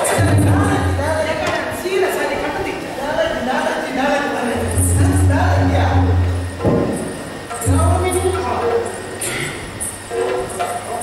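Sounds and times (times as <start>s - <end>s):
reedy drone: 4.3s - 11.0s.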